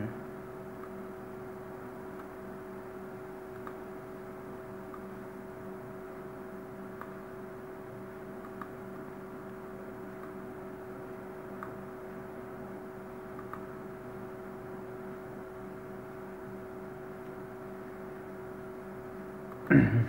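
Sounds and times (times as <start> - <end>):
recording hum and hiss: 0.0 - 20.0
faint clicks: 13.4 - 13.7.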